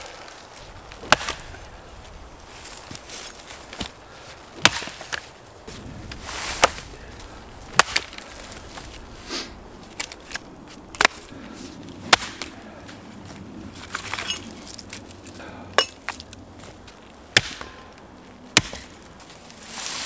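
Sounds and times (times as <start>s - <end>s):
twigs rustling: 0.0s - 20.0s
axe chopping branches: 0.6s - 1.8s, 2.5s - 11.4s, 12.0s - 12.6s, 15.8s - 16.3s, 17.3s - 19.3s.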